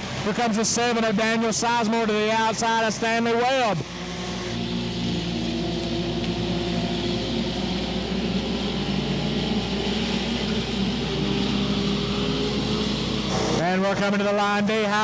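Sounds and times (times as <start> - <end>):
race car engines droning: 0.0 - 15.0.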